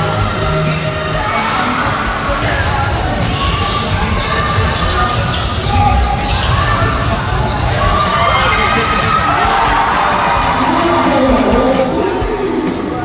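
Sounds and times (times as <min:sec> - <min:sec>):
crowd voices murmuring: 0:00.0 - 0:13.0.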